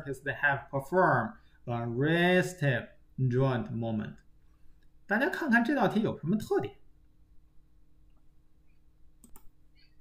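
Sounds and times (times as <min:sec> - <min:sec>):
faint steady hum: 0:00.0 - 0:10.0
mouse clicks: 0:08.7 - 0:09.9.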